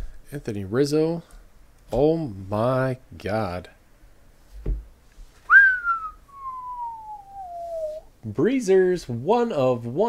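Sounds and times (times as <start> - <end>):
man whistling: 5.5 - 8.1.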